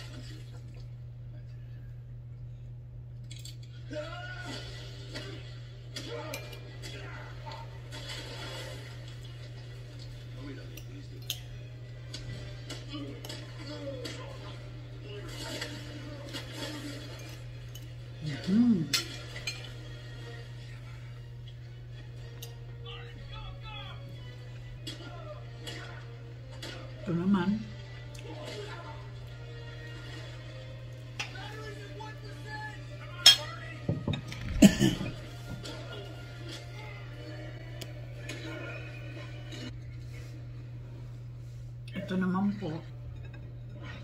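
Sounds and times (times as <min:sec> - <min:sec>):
low hum: 0:00.0 - 0:33.4.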